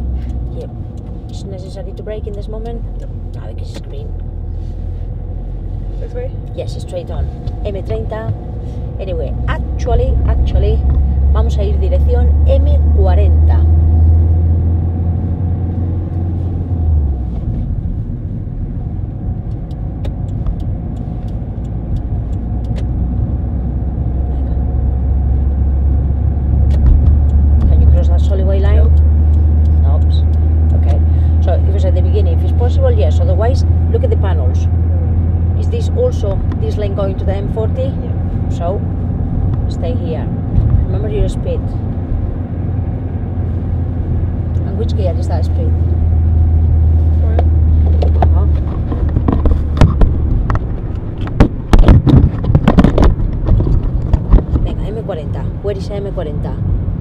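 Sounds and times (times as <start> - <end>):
car engine and tyres drone: 0.0 - 57.0.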